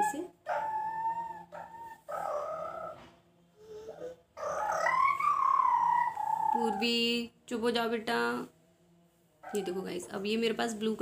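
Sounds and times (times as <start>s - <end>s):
dog howling: 0.4s - 6.9s, 9.4s - 9.9s.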